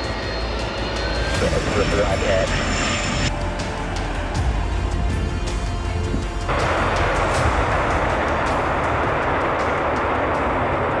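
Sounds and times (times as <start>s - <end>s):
jet engines in reverse thrust: 0.0s - 5.3s, 6.4s - 11.0s.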